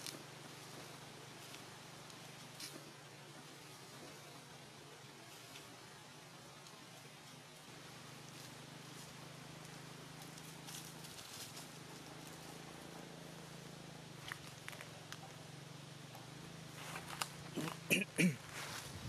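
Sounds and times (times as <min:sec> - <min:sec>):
dry leaves crackling underfoot: 0:00.0 - 0:04.2, 0:08.2 - 0:13.4, 0:14.2 - 0:15.4, 0:16.7 - 0:19.0
steady low hum: 0:00.0 - 0:19.0.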